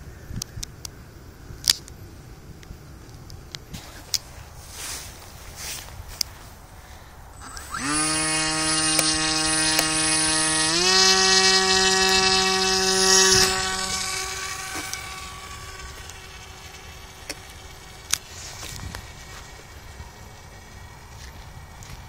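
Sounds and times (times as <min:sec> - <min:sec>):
model airplane motor whining: 0:07.4 - 0:22.0.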